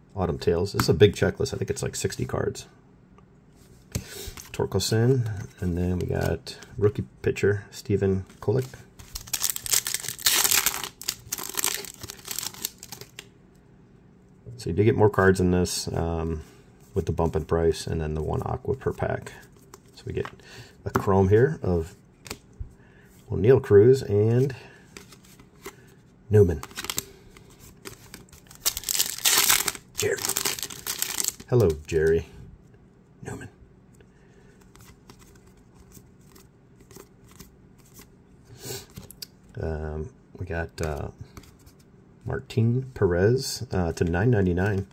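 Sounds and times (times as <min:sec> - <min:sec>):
card pack wrapper tearing and crinkling: 0:09.0 - 0:13.2, 0:26.6 - 0:27.1, 0:27.8 - 0:31.9.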